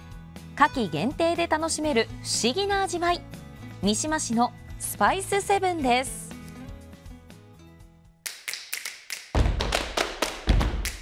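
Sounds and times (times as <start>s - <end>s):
soft background music: 0.0s - 8.2s.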